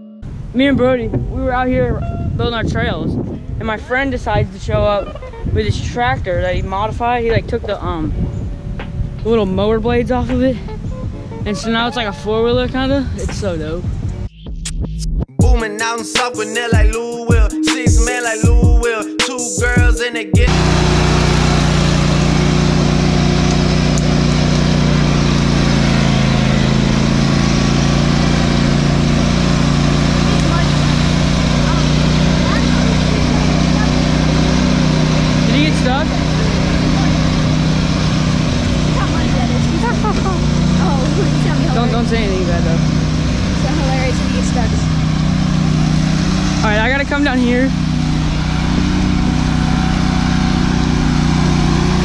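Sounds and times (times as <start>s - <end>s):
lawn tractor engine running: 19.7s - 52.0s.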